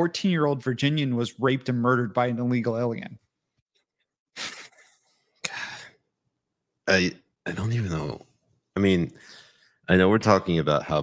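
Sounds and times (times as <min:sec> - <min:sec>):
sharp breath out: 0:09.2 - 0:09.8.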